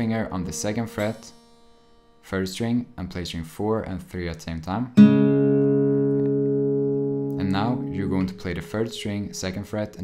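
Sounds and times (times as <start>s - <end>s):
acoustic guitar notes ringing: 0.0s - 3.0s, 5.0s - 10.0s.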